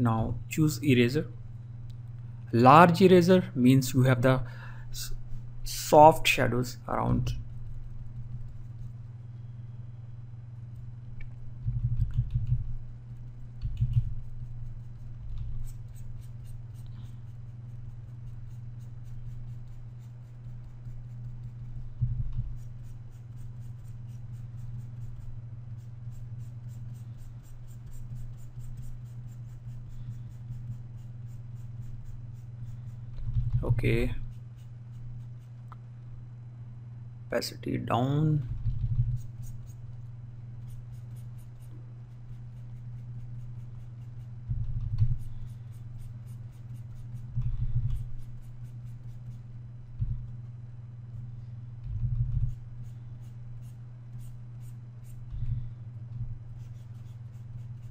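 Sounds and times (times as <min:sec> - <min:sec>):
low electrical hum: 0:00.0 - 0:57.9
scratchy rubbing strokes: 0:07.3 - 0:09.3, 0:14.1 - 0:21.9, 0:22.5 - 0:35.7, 0:40.6 - 0:44.5, 0:45.1 - 0:49.5, 0:52.3 - 0:55.3, 0:56.4 - 0:57.9.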